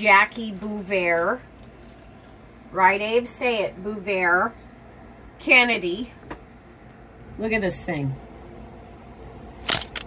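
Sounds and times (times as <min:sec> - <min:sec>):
camera shutter click: 0:09.6 - 0:10.0.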